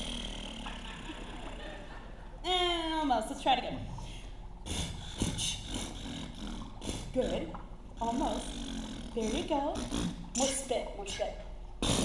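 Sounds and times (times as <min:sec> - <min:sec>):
man beatboxing: 0:04.7 - 0:07.1.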